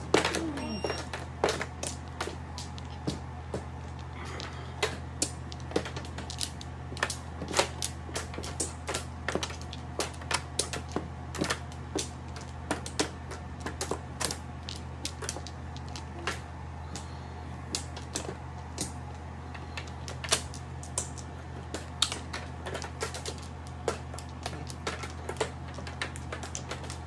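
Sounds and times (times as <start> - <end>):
mahjong tiles clicking: 0.0 - 17.1, 17.7 - 27.0
steady low hum: 0.0 - 27.0.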